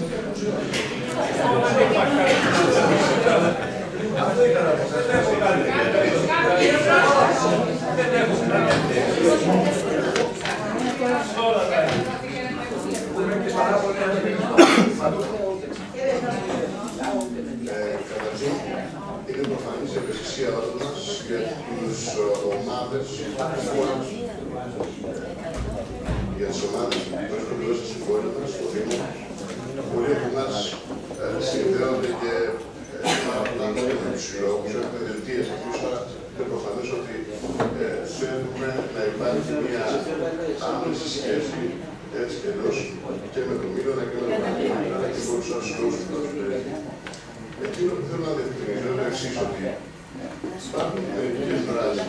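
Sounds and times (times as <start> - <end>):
people talking: 0.0 - 52.0
person coughing: 14.5 - 15.0, 33.0 - 33.4.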